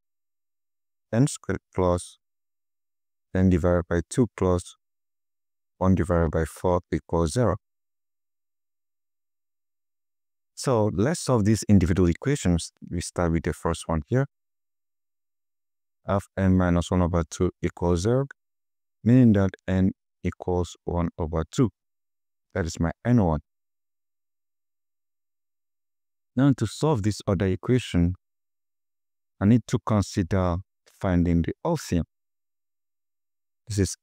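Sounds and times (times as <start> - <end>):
person speaking: 1.2 - 2.2, 3.4 - 4.7, 5.8 - 7.6, 10.6 - 14.3, 16.1 - 18.3, 22.6 - 23.4, 33.7 - 34.0.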